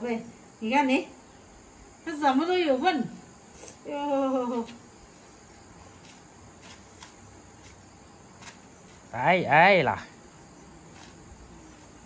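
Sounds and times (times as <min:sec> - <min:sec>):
crickets chirping: 0:00.0 - 0:12.0.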